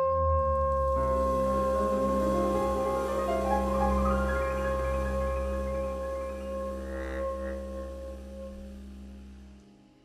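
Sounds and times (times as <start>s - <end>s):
jazz ensemble holding a chord: 1.0s - 9.6s.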